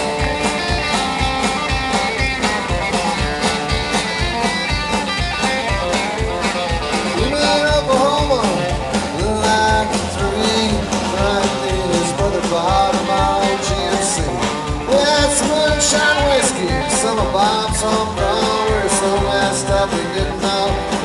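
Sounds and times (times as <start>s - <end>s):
live band playing: 0.0s - 21.0s
steady drum beat: 0.0s - 21.0s.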